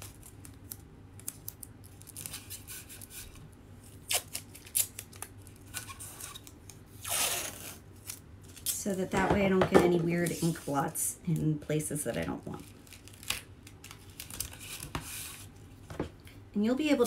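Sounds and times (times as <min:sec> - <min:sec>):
tape crackling and clicking: 0:00.0 - 0:09.2, 0:12.5 - 0:17.0
tape ripped off roll: 0:07.0 - 0:07.8.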